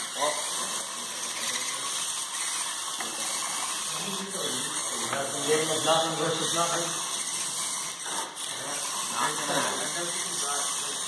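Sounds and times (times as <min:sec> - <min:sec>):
electric motors and gears whirring: 0:00.0 - 0:11.0.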